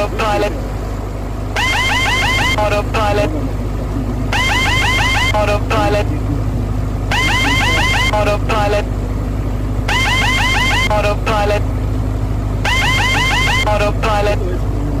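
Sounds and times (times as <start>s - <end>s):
recorded voice speaking: 0.0s - 0.7s, 2.4s - 4.4s, 5.1s - 9.0s, 10.7s - 11.7s, 13.5s - 15.0s
aircraft engine and propeller drone: 0.0s - 15.0s
rising whoop warning tones: 1.6s - 2.6s, 4.3s - 5.4s, 9.9s - 10.9s, 12.6s - 13.7s.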